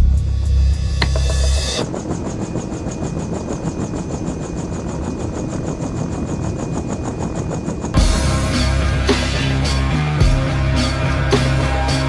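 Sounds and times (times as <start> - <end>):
music: 0.0 - 2.1, 7.9 - 12.0.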